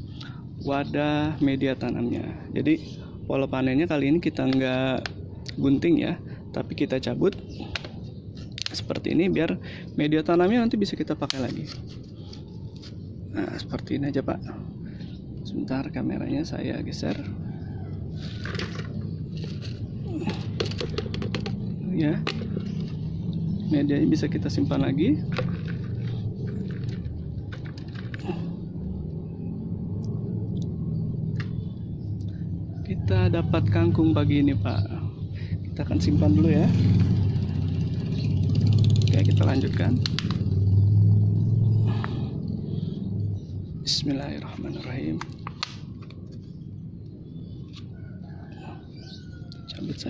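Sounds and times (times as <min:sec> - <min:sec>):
low engine hum: 0:10.7 - 0:48.8.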